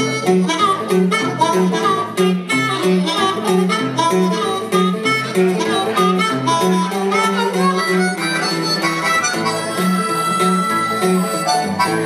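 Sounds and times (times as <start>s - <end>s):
amplified blues harmonica: 0.0s - 12.0s
repeating guitar riff: 0.0s - 12.0s.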